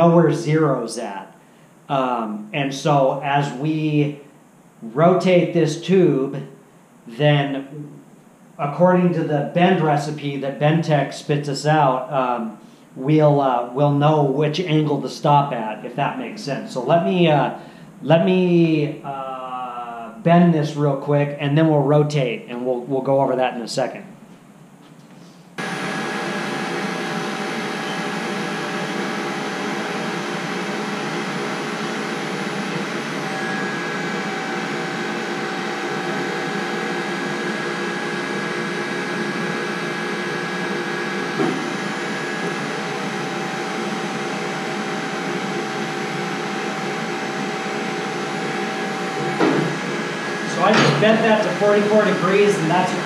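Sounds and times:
tube bender motor running: 25.6 - 53.0
brief knock: 41.4 - 41.7.

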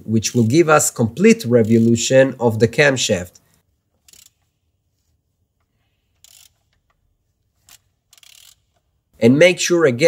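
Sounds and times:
socket wrench ratcheting: 4.0 - 4.4, 6.2 - 7.0, 7.6 - 8.9.

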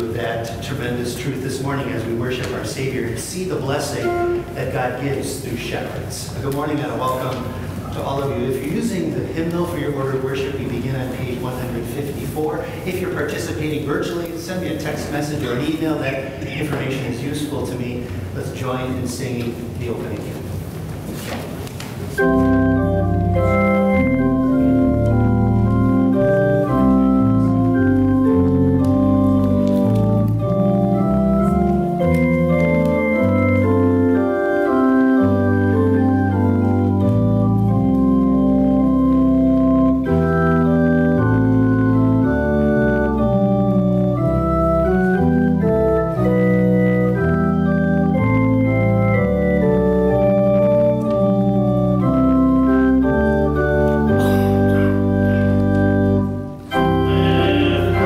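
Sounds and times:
church organ playing chords: 0.0 - 16.1, 22.1 - 58.0.

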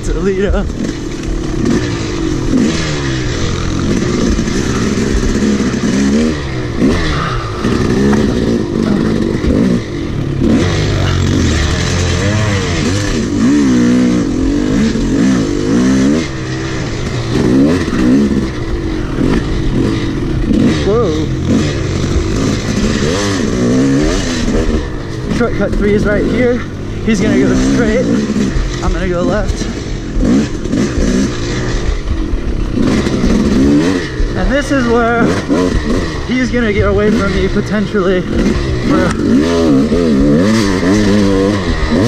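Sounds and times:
dirt bike engine revving: 0.0 - 42.0.

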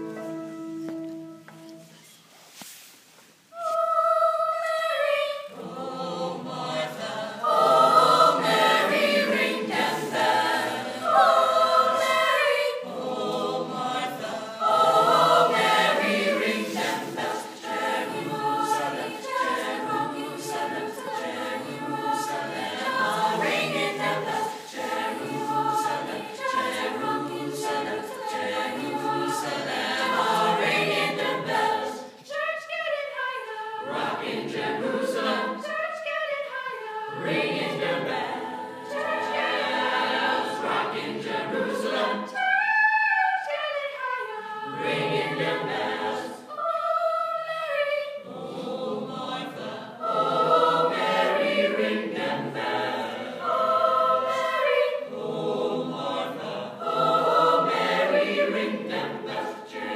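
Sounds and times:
chorus singing in parts: 3.5 - 59.9.

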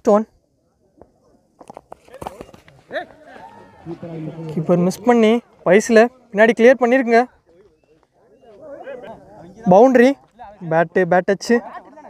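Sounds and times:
distant voices shouting: 2.0 - 10.3.

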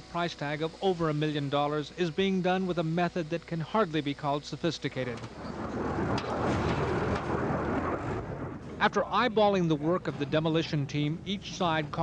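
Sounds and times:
steady machine noise: 0.0 - 12.0.

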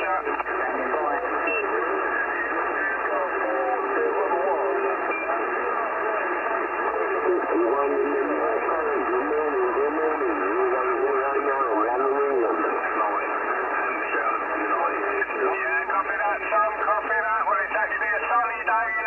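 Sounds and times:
overlapping radio voices: 0.0 - 19.0
radio background hiss: 0.0 - 19.0.

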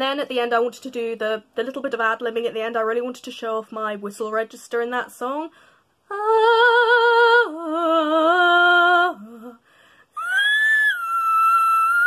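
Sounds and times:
woman singing unaccompanied: 4.6 - 9.6.

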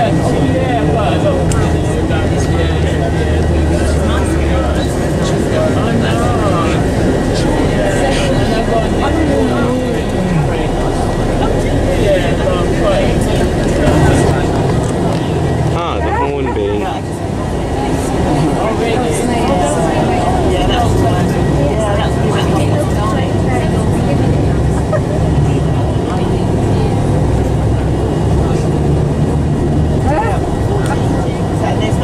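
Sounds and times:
coach engine drone: 0.0 - 32.0
passenger chatter: 0.0 - 32.0
road noise: 0.0 - 32.0.

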